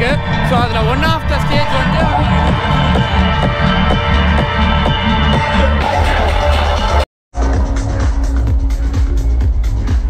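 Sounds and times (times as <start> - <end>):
electronic dance music: 0.0 - 10.0.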